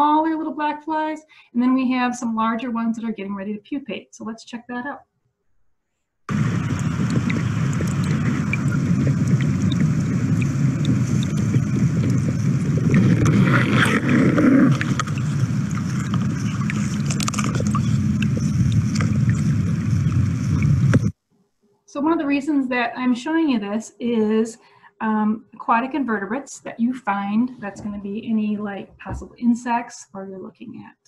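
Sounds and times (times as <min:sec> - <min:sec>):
stream water rippling over rocks: 0:06.3 - 0:21.1.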